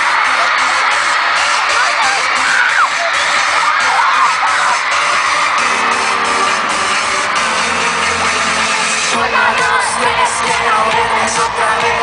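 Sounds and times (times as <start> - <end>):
crowd screaming and cheering: 0.0 - 12.0
instrumental music over loudspeakers: 0.0 - 12.0.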